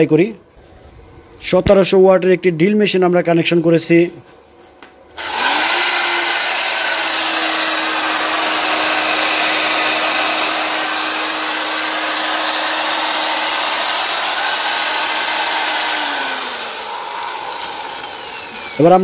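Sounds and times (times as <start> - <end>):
electric drill motor running: 5.2 - 19.0.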